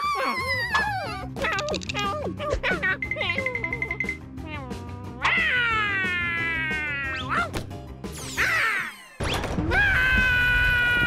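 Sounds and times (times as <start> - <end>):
person yowling like a cat: 4.6 - 7.3.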